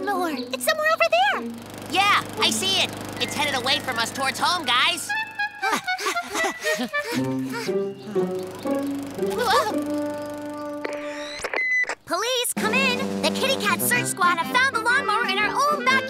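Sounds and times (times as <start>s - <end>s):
cartoon background music: 3.3s - 11.2s, 12.6s - 16.0s.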